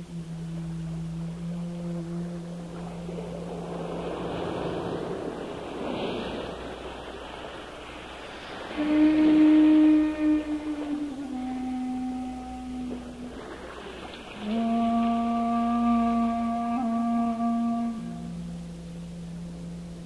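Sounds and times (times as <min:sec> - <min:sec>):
bamboo flute long notes: 0:00.0 - 0:07.0, 0:07.8 - 0:20.0
steady background hiss: 0:00.0 - 0:20.0.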